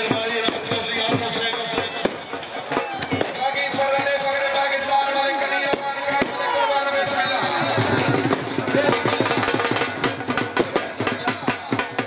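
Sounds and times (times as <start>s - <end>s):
crowd shouting: 0.1s - 11.1s.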